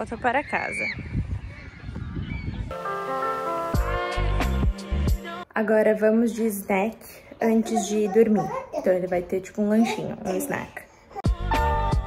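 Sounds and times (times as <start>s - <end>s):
background music with sustained notes: 2.7s - 5.5s.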